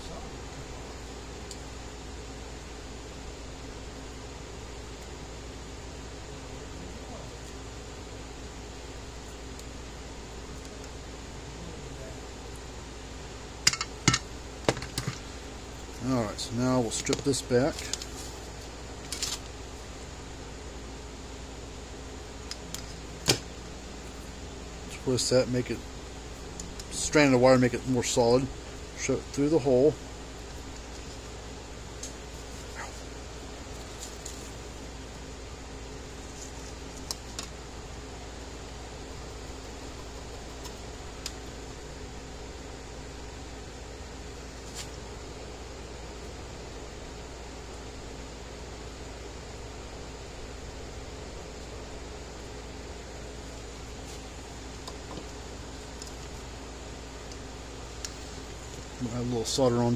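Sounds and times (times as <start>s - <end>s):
fan-like hum: 0.0s - 59.9s.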